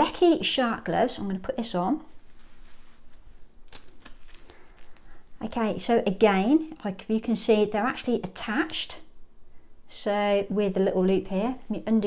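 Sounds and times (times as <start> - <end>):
glove fabric handling: 2.0 - 5.4.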